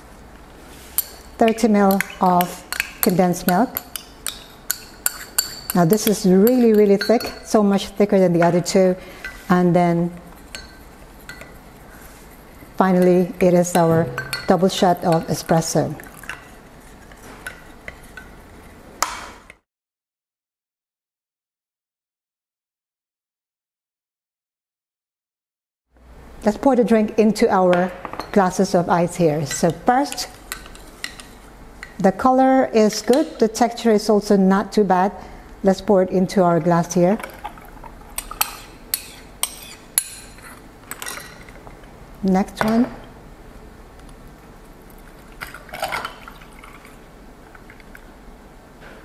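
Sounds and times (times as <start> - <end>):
spoon stirring in glass jug: 0.8 - 8.0, 10.3 - 18.3
spoon clinking on glass: 3.8 - 7.5, 13.7 - 14.5
liquid pouring over ice: 45.0 - 47.9.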